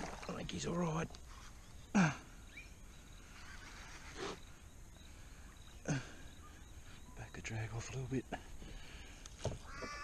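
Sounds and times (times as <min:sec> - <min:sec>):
creekside background noise: 0:00.0 - 0:10.0.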